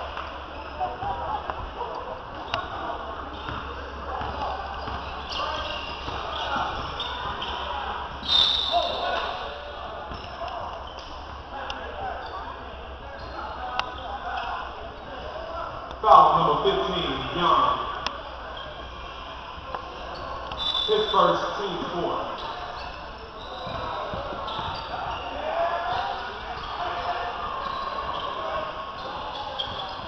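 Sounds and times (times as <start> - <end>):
spectators chatting: 0.0 - 30.0
referee's whistle: 5.3 - 9.6, 20.5 - 23.9.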